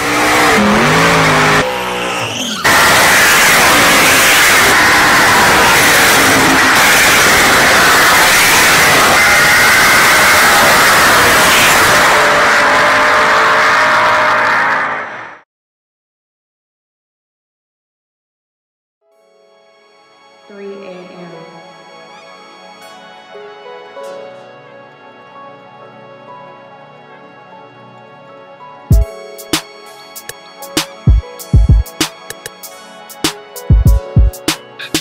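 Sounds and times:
car engine revving: 0:00.0 - 0:15.4
tyres squealing and skidding: 0:00.0 - 0:15.4.

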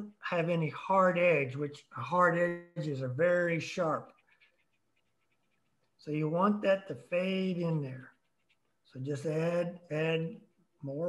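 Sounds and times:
brush scratching on paper: 0:02.7 - 0:09.5.

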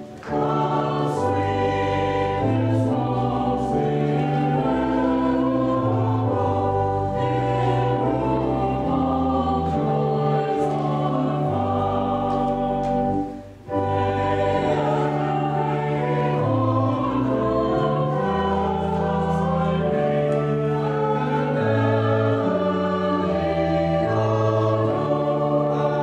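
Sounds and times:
choir singing in held chords: 0:00.0 - 0:26.0.

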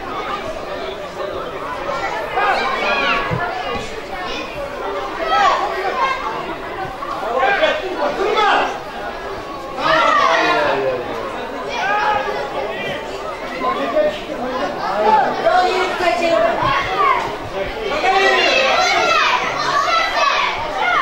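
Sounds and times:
voices calling and shouting: 0:00.0 - 0:21.0.

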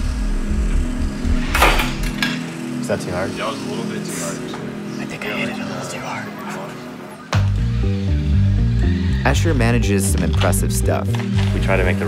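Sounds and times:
low pulse background music: 0:00.0 - 0:12.0
sharp clatter of robot shoved: 0:01.5 - 0:02.4.

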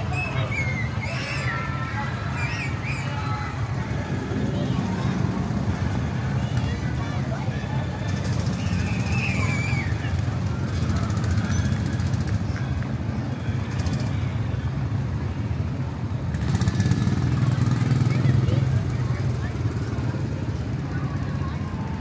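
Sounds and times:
faint distant voices: 0:00.0 - 0:22.0.

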